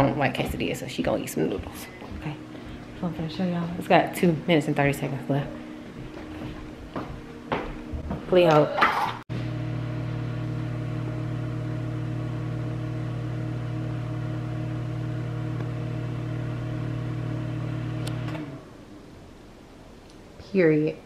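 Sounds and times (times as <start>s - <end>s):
microwave oven humming: 9.3s - 18.9s.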